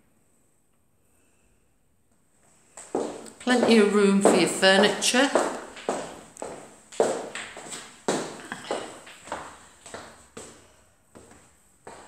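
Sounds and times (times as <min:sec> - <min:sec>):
footsteps on laminate floor: 0:02.7 - 0:10.6, 0:11.2 - 0:12.0.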